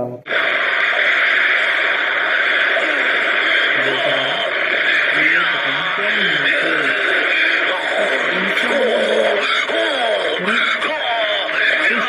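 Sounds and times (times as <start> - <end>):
loud steady hiss: 0.3 - 10.9
faint voices: 2.6 - 12.0.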